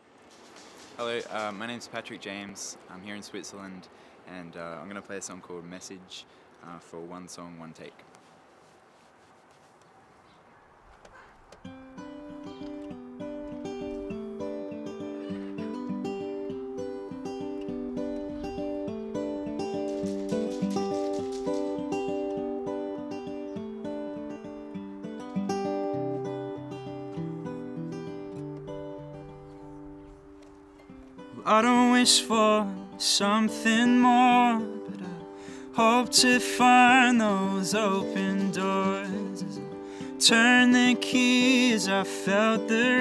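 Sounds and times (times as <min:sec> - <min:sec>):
acoustic guitar arpeggios: 0:11.7 - 0:43.0.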